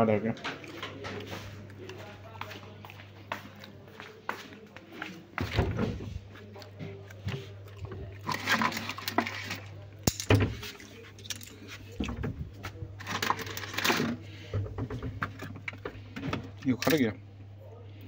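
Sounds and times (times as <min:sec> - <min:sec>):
utensils knocking and clinking: 0:08.2 - 0:12.4.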